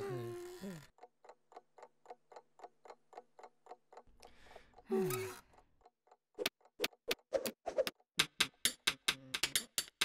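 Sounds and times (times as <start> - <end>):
clock ticking quickly: 1.0 - 7.4.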